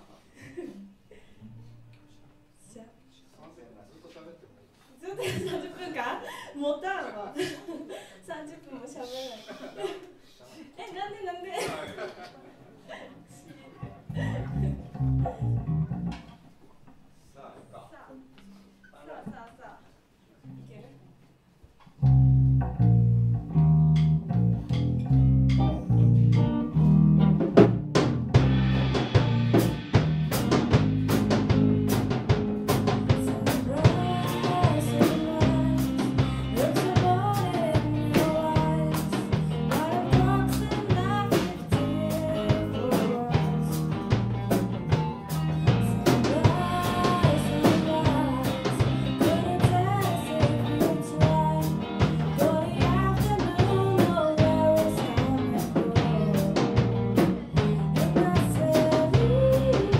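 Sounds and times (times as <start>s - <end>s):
electric bass: 13.9s - 16.4s, 22.0s - 59.9s
electric guitar: 13.9s - 16.5s, 22.0s - 59.9s
drum kit: 14.1s - 16.5s, 21.9s - 59.9s
woman singing: 32.7s - 44.0s, 45.3s - 59.9s.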